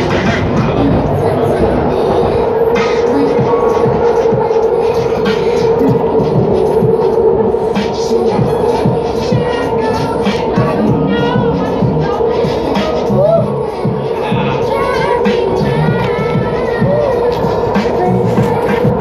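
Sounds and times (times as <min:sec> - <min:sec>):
train carriage hum: 0:00.0 - 0:19.0
music with steady beat: 0:02.7 - 0:19.0.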